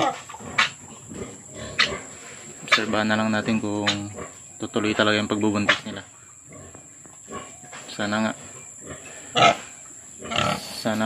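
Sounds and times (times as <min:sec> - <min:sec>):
pig grunting faintly: 0:07.3 - 0:11.0.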